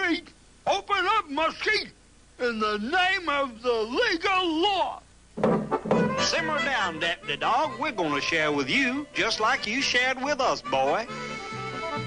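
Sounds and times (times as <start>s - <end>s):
cartoon soundtrack music: 5.7s - 9.9s
person speaking: 6.0s - 11.2s.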